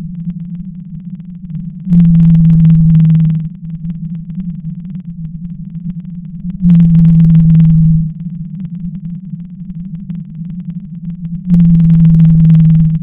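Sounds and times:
steady low hum: 0.0 - 13.0
whale call: 6.6 - 9.1.

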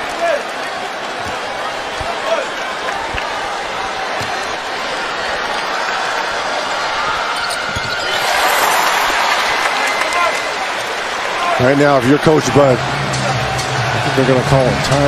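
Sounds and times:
arena crowd cheering: 0.0 - 15.0.

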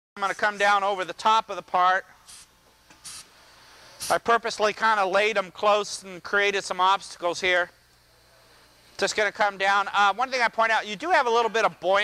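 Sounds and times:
pneumatic cylinder hissing air: 2.2 - 4.3.

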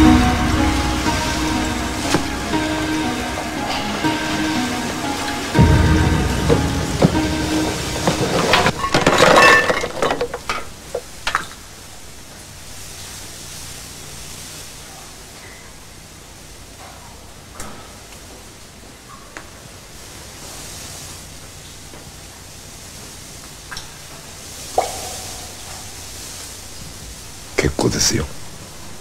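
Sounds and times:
steady background hiss: 0.0 - 29.0.

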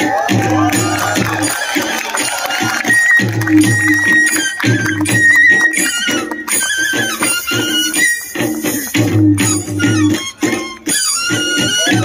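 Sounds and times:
repeating deep beat: 0.0 - 10.2
high trilled melody: 0.6 - 12.0.

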